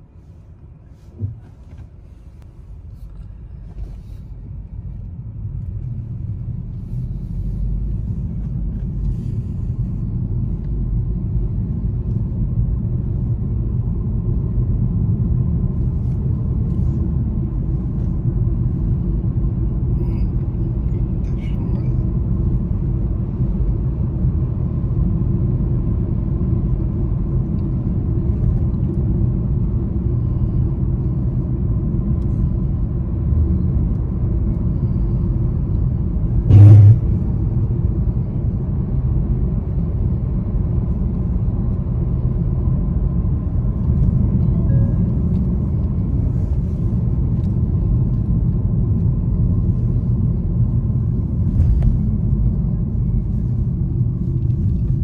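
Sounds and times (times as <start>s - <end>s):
engine and tyre rumble: 0.0s - 55.0s
loud thump: 36.5s - 37.2s.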